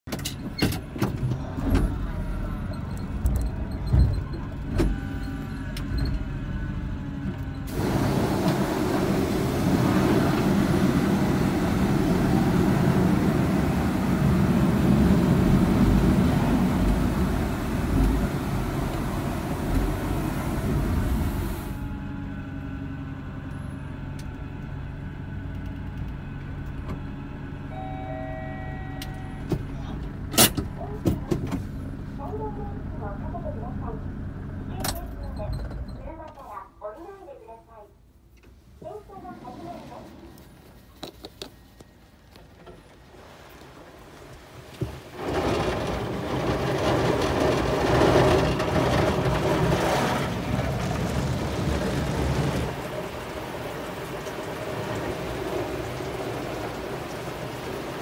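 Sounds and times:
van engine running low: 0.2s - 36.2s, 45.1s - 58.0s
water jets spraying hiss: 7.7s - 21.8s, 51.8s - 58.0s.

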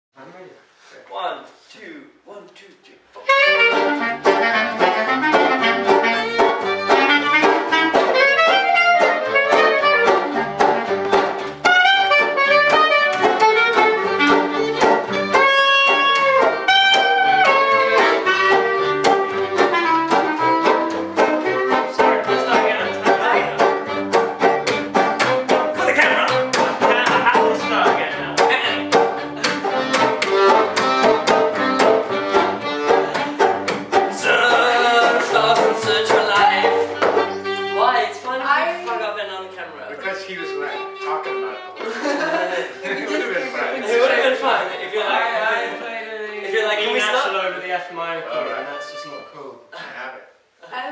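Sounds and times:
acoustic string band playing: 3.2s - 49.6s.

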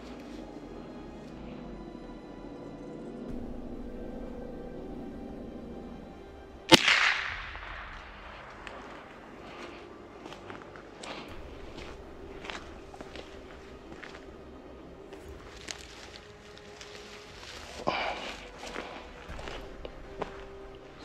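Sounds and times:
gunshot with echo: 6.7s - 9.2s
footsteps on gravel: 6.7s - 21.0s.

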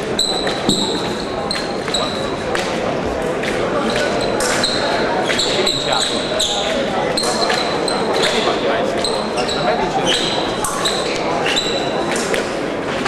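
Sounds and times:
shoes squeaking on floor: 0.0s - 3.2s, 3.8s - 12.4s
murmur of voices in hall: 0.0s - 13.0s.

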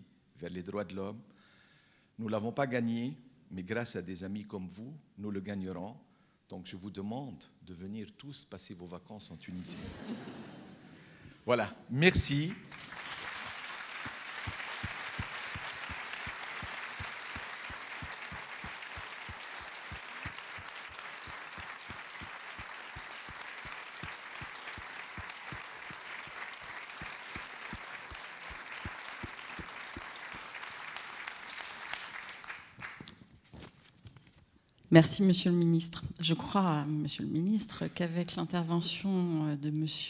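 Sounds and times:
audience applauding: 12.4s - 33.1s.

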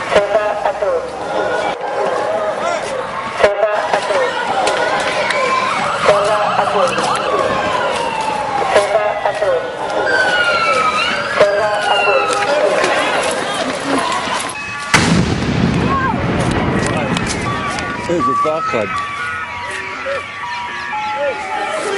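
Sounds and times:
voices shouting: 0.0s - 15.1s, 15.8s - 21.9s
wailing siren: 0.0s - 21.9s.

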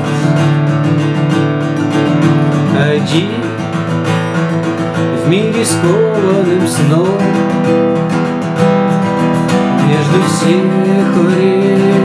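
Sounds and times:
acoustic guitar strumming: 0.0s - 12.0s
man singing: 2.4s - 8.2s, 9.2s - 12.0s.

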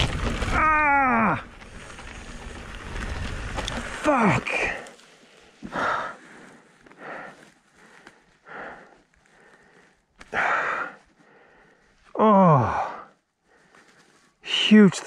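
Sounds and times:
man breathing sharply: 5.1s - 12.0s
man groaning: 12.2s - 13.0s.

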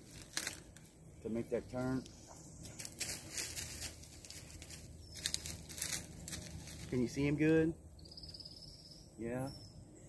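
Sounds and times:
dry leaves and twigs crackling: 0.0s - 7.6s.

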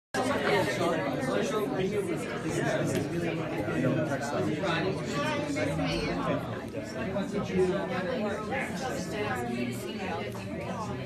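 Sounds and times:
people talking at once: 0.2s - 11.0s.

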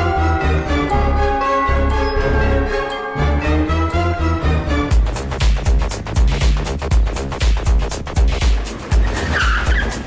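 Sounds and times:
film score with deep beat: 0.0s - 10.0s
car tyres screeching: 8.8s - 10.0s.

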